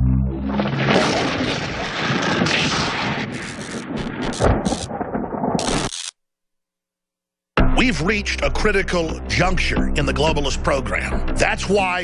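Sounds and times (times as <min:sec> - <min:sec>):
rumbling crackling sound effect: 0:00.0 - 0:06.1.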